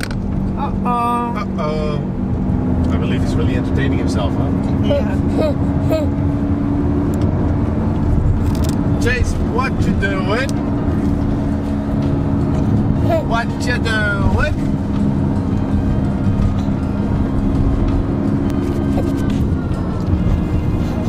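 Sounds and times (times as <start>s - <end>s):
car interior rumble: 0.0s - 21.0s
baby squealing: 5.2s - 6.2s.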